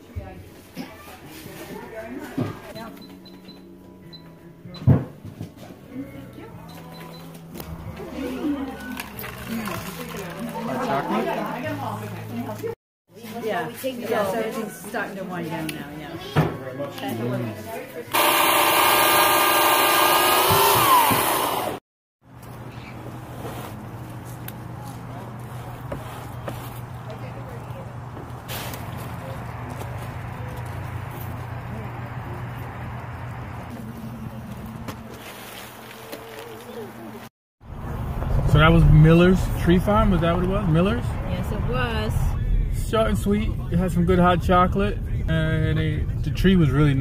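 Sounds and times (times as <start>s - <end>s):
electric chainsaw cutting wood: 18.1s - 21.8s.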